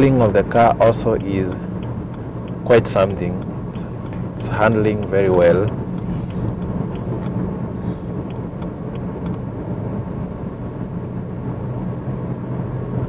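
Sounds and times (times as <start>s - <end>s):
car engine drone: 0.0s - 13.0s
road noise: 0.0s - 13.0s
faint ticks: 0.5s - 7.4s.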